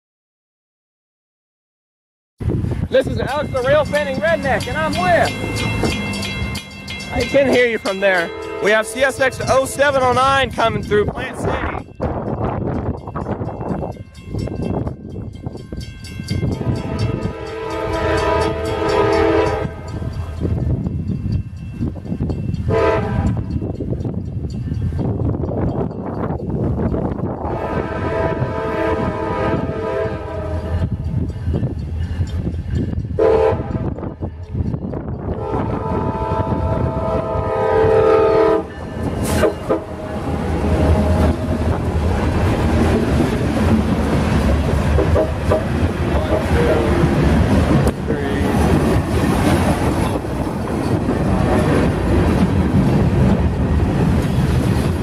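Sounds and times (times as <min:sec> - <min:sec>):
train engine and wheels rumbling: 0:02.4 - 0:55.0
locomotive air horn blasts: 0:16.6 - 0:20.0, 0:22.7 - 0:23.4, 0:27.4 - 0:30.9, 0:33.2 - 0:34.0, 0:35.4 - 0:41.7.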